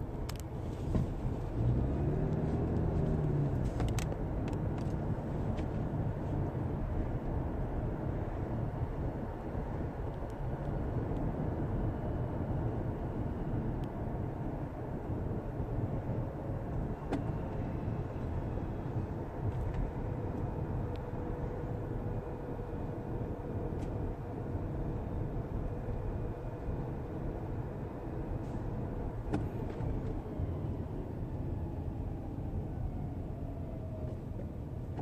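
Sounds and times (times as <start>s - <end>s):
car engine and tyre rumble: 0.0s - 35.0s.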